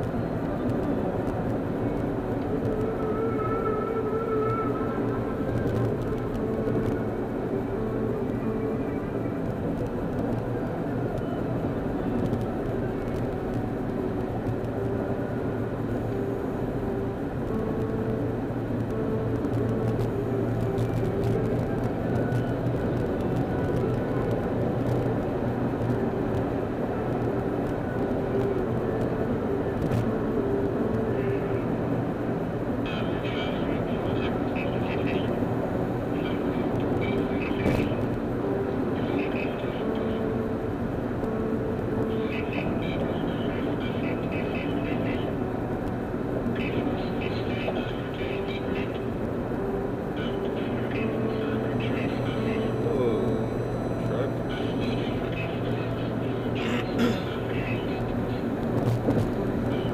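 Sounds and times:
car road and engine drone: 0.0 - 59.9.

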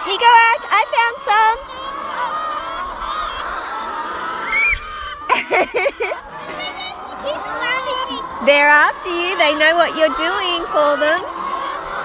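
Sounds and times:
flock of hens calling: 0.0 - 12.0.

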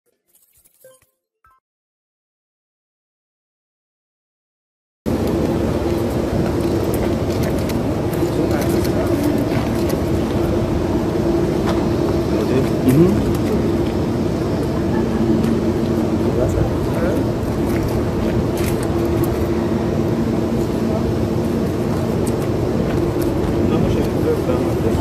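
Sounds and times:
jet engines running while taxiing: 5.1 - 25.0.

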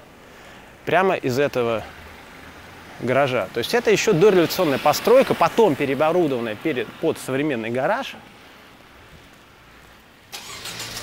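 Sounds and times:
car engine starting and running: 10.3 - 11.0.

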